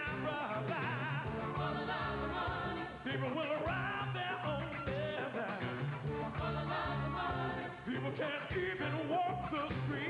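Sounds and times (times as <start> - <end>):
electric bass line: 0.0 - 10.0
singers with vibrato: 0.0 - 10.0.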